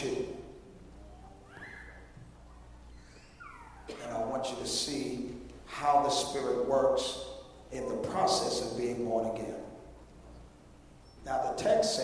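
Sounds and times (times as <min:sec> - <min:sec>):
man speaking through microphone: 0:00.0 - 0:00.6, 0:03.9 - 0:09.8, 0:11.2 - 0:12.0.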